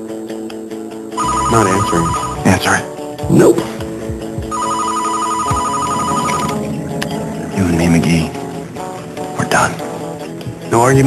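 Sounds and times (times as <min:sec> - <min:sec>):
phone ringing with electronic trill: 0:01.2 - 0:02.5, 0:04.5 - 0:06.7.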